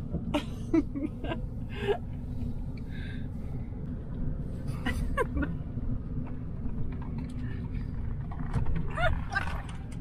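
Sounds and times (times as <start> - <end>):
vehicle rumble inside cab: 0.0 - 10.0.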